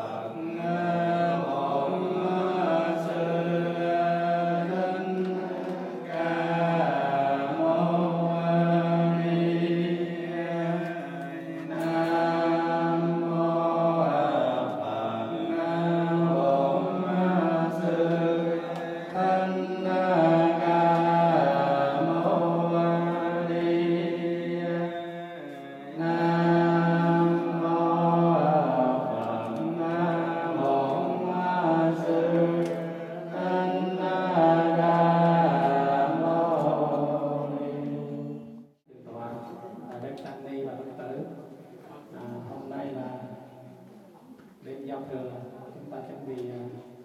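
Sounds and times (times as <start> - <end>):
monks chanting through microphone: 0.0 - 47.0.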